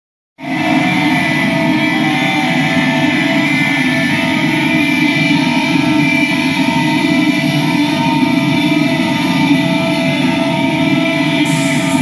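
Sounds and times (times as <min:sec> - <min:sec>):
live rock music with guitar: 0:00.4 - 0:12.0.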